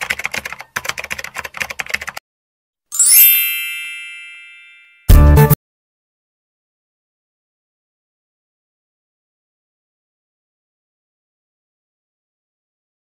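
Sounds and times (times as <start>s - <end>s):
bright chime ringing: 3.0s - 5.6s.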